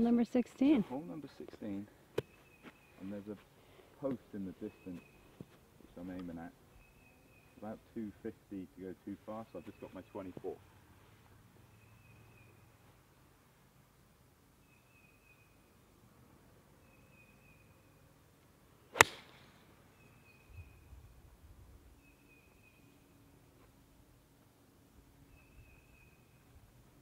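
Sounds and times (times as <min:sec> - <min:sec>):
golf club striking ball: 0:18.9 - 0:19.6.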